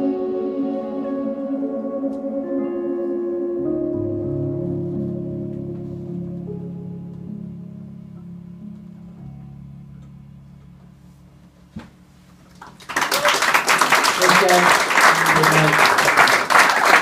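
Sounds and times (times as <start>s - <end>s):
sustained keyboard chord: 0.0s - 12.9s
applause: 12.5s - 17.0s.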